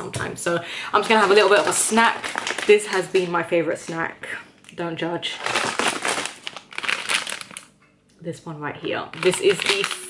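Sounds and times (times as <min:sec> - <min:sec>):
plastic snack bag crinkling: 0:01.0 - 0:03.4, 0:05.2 - 0:07.8, 0:09.1 - 0:10.0.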